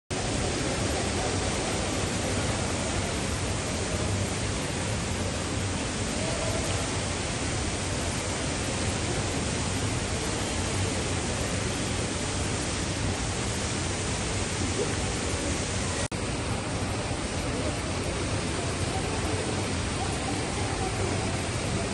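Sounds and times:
shopping centre lobby hum: 0.1s - 21.9s.

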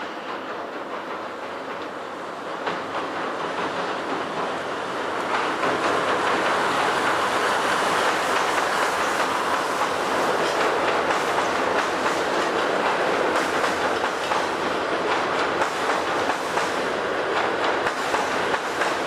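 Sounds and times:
rail joint clicks: 0.0s - 19.0s
train wheels rumbling on rails: 0.0s - 19.0s.

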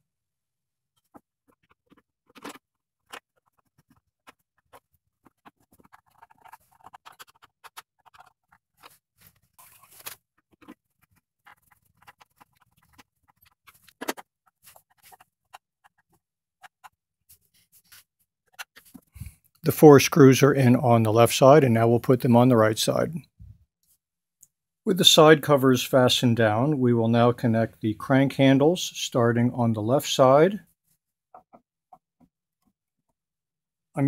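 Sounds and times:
scratchy scraping: 1.0s - 19.1s.

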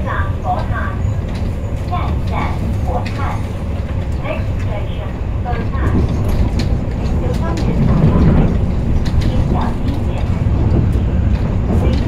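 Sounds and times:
passengers talking: 0.0s - 12.0s
train wheels rumbling: 0.0s - 12.0s.

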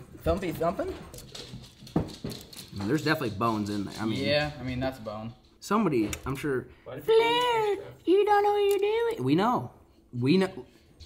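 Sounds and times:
pets scuffling and thumping: 0.0s - 5.2s.

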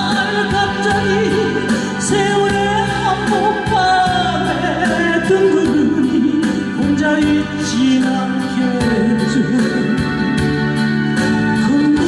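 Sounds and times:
woman singing a slow ballad: 0.0s - 10.6s, 11.5s - 12.0s
backing track with steady beat: 0.0s - 12.0s.

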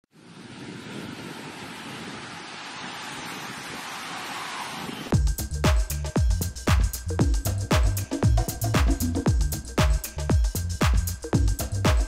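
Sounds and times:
steady rushing noise: 0.1s - 6.0s.

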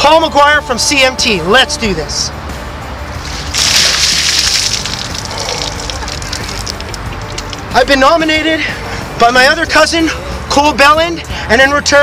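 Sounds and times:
water splashing on pavement: 3.2s - 7.8s.

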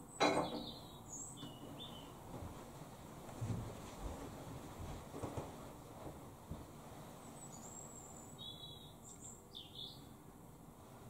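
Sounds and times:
bird singing: 0.0s - 2.2s, 7.4s - 10.2s
low steady background noise: 0.0s - 11.0s.

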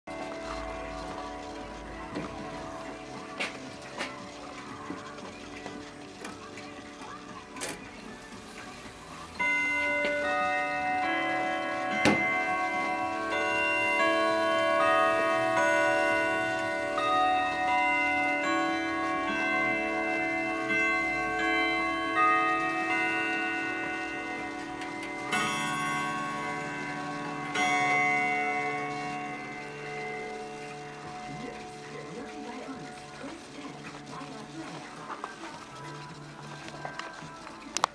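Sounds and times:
clock ticking: 0.1s - 37.9s
grandfather clock chiming: 0.1s - 37.9s.

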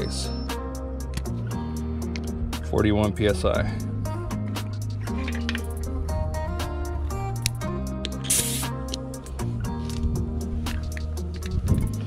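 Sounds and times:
background music: 0.0s - 12.0s
air hissing from tire chuck: 8.2s - 9.0s.

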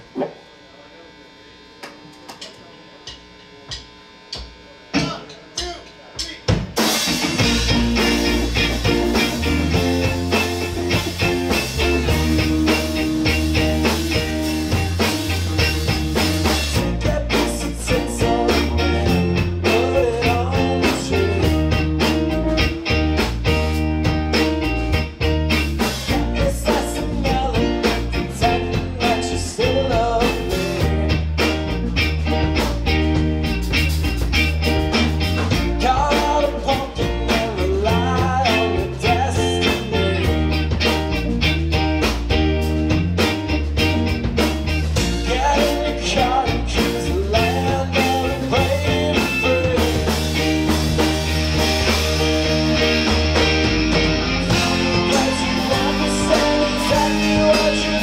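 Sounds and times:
live rock band playing: 6.5s - 58.0s.

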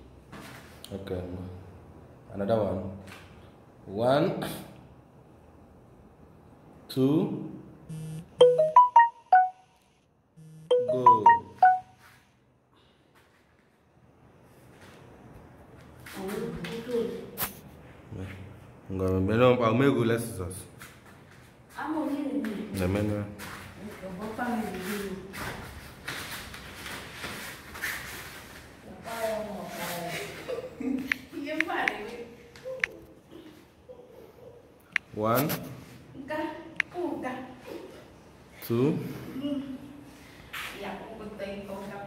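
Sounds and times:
low buzz: 7.9s - 8.4s, 9.8s - 10.8s
electronic ringtone melody: 7.9s - 12.0s.

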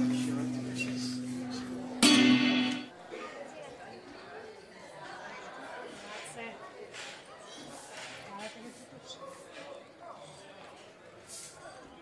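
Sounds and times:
people chattering quietly: 0.0s - 12.0s
guitar strummed chord: 2.0s - 2.9s.

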